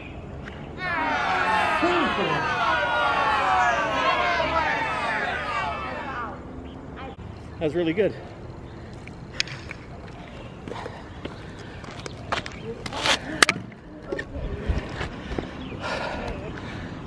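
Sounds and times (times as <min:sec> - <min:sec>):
footsteps on asphalt: 0:08.2 - 0:13.4, 0:14.1 - 0:16.8.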